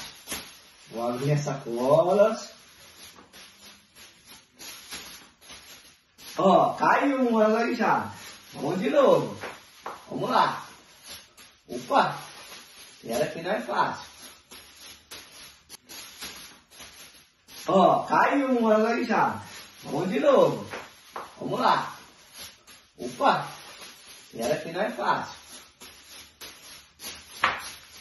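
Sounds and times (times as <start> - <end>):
plastic bags rustling: 0.0 - 28.0.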